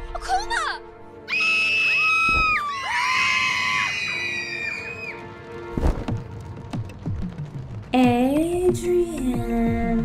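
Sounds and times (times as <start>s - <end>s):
faint background music: 0.0s - 10.0s
high-pitched screaming: 1.3s - 5.2s.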